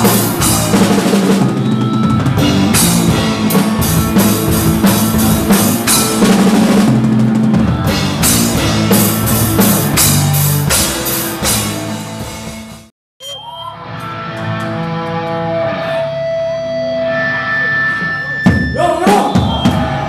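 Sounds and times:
drum kit crashing: 0.0s - 12.9s
live rock band playing: 0.0s - 12.9s, 13.8s - 20.0s.

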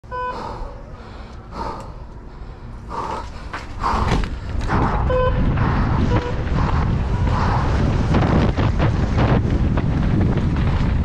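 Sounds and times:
wind buffeting microphone: 2.9s - 11.0s
bike rattling over rocks: 5.4s - 11.0s.

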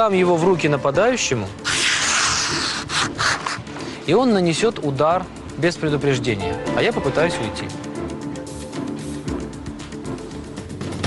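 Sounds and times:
knife slicing through paper: 1.6s - 3.7s.

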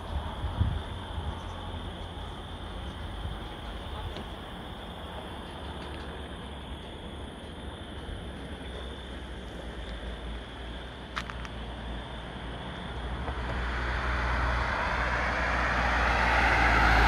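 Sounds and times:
car approaching: 0.0s - 17.0s.

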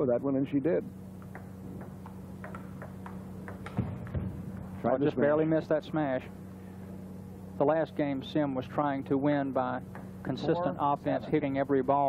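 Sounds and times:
table tennis ball clicking: 1.2s - 4.2s.

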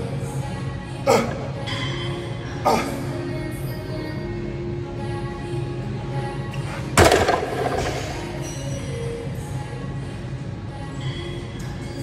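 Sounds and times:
background music: 0.0s - 12.0s
barbell dropping on floor: 7.0s - 8.4s.

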